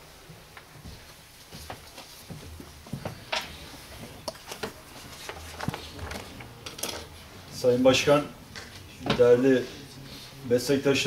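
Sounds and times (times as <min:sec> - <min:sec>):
low room hum: 0:00.0 - 0:11.0
knocks clicks and rustles: 0:02.5 - 0:07.2.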